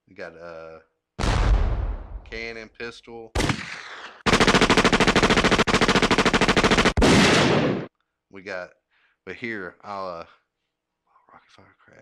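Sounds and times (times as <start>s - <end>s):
machine-gun fire sound effect: 3.4s - 7.9s.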